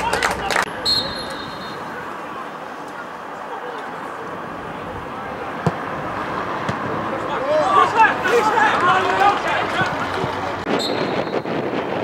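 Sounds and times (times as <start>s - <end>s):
faint distant voices: 0.0s - 10.7s
football being kicked: 5.6s - 5.9s, 6.6s - 6.9s.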